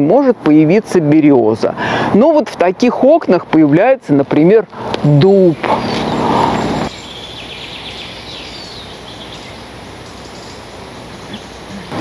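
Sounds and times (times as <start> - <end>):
steady background hiss: 0.0 - 12.0
rush of noise: 4.8 - 7.0
faint high bird chirps: 5.8 - 12.0.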